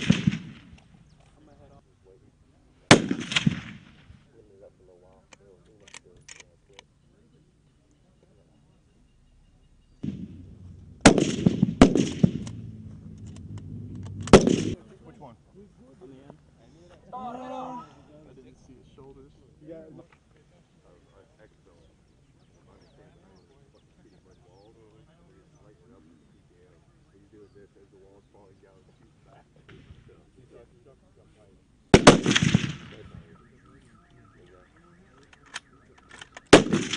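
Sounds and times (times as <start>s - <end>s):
loud rifle shots: 0.0s - 0.8s, 2.9s - 4.2s, 10.0s - 14.8s, 31.9s - 33.8s, 35.5s - 36.9s
faint distant rifle shots: 0.0s - 1.0s, 2.9s - 4.3s, 10.0s - 15.0s, 31.9s - 36.9s
short clicks: 35.1s - 36.6s.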